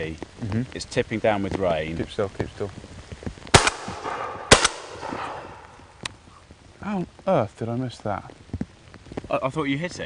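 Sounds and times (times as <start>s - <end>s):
shotgun shot: 3.5s - 5.7s.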